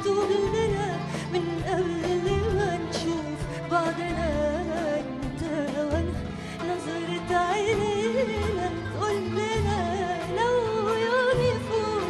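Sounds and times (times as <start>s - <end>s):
orchestra accompanying: 0.0s - 12.0s
woman singing ornamented melody: 0.0s - 12.0s.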